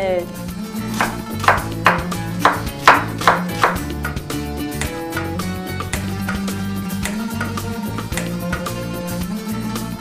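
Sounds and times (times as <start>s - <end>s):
background music with held notes: 0.0s - 10.0s
knife chopping on wooden board: 0.9s - 8.7s.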